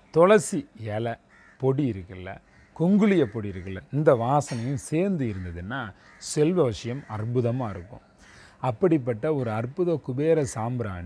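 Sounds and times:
man speaking emphatically: 0:08.6 - 0:11.0.

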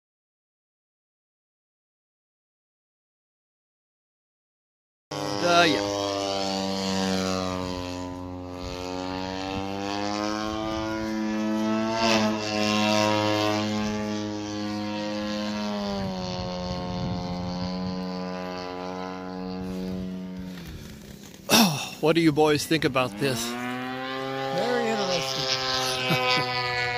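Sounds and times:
model airplane engine and propeller: 0:05.1 - 0:26.9.

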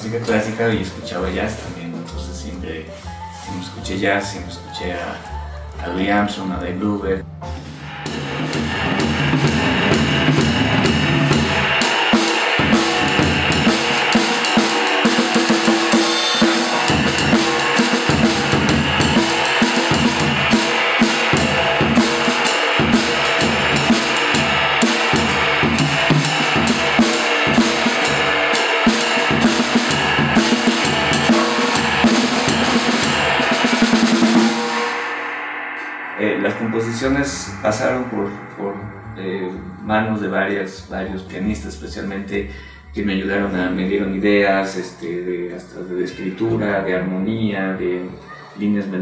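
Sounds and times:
jazz drum kit with sticks: 0:00.0 - 0:05.2, 0:07.4 - 0:40.0.

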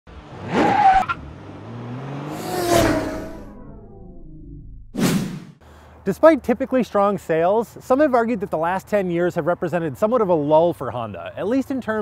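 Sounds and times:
engine revving up: 0:00.1 - 0:05.6
car passing by: 0:00.2 - 0:04.0.

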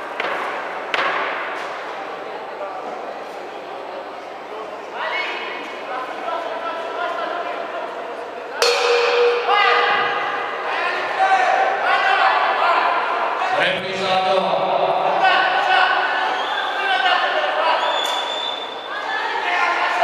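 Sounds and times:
voices shouting in echoing hall: 0:02.1 - 0:20.0
boxing ring bell: 0:08.6 - 0:10.6.

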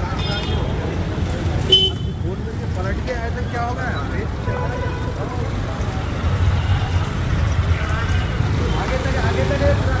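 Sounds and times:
traffic rumble and motorbikes: 0:00.0 - 0:10.0.

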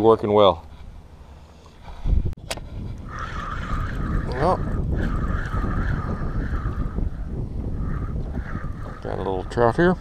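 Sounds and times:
wind on microphone: 0:01.8 - 0:10.0.

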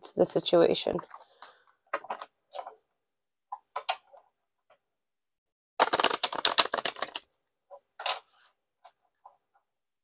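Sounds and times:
cards riffle-shuffled: 0:05.8 - 0:07.2
cards rustling: 0:05.8 - 0:07.3.

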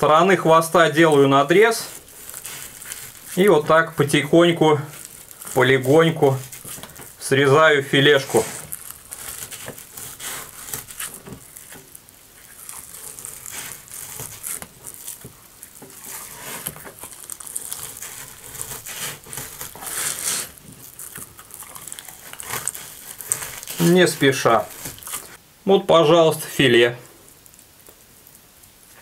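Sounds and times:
knife scraping fish skin: 0:01.9 - 0:03.6, 0:08.0 - 0:25.4.

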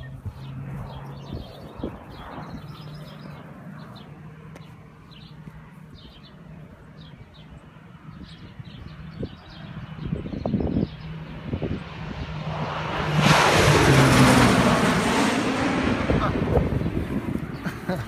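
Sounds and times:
airplane engine passing low: 0:00.0 - 0:18.0.

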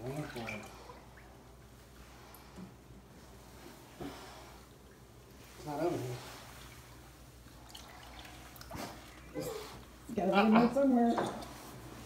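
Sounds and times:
water dripping and sloshing: 0:00.0 - 0:12.0
small water splash: 0:06.3 - 0:09.3.

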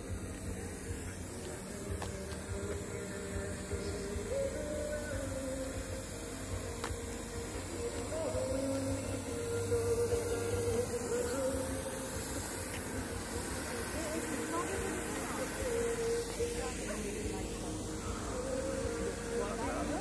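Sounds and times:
faint distant music: 0:00.0 - 0:20.0
steady low hum: 0:00.0 - 0:20.0.

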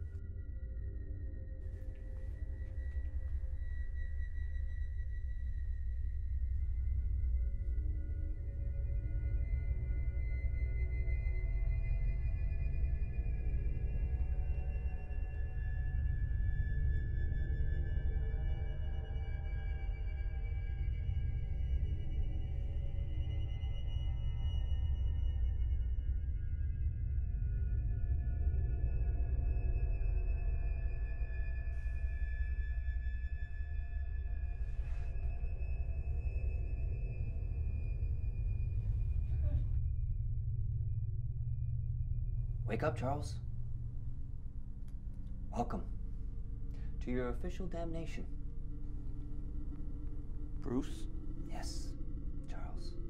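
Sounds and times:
low rumbling drone: 0:00.0 - 0:53.0.

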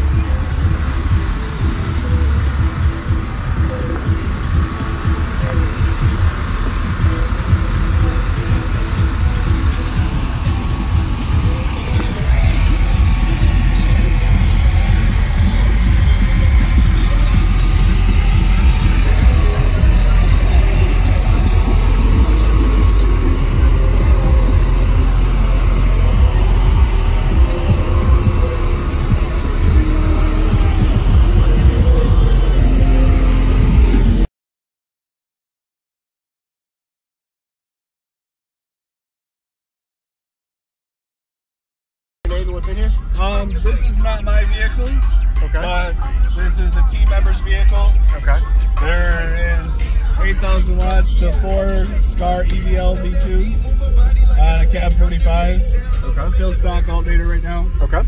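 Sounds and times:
bass-heavy music from car audio: 0:00.0 - 0:34.3, 0:42.3 - 0:58.0.

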